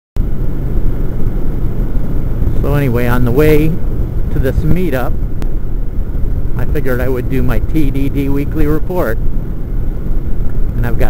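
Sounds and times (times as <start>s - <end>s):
motorcycle engine and wind noise: 0.2s - 11.0s.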